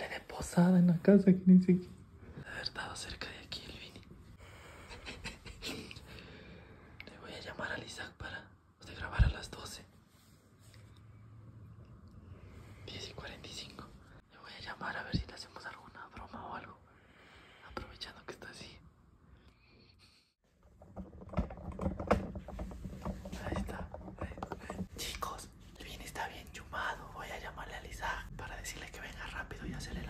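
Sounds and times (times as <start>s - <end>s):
person whispering: 0.0s - 1.8s, 2.4s - 4.1s, 7.0s - 10.0s, 12.8s - 16.9s, 17.6s - 18.9s, 23.3s - 30.0s.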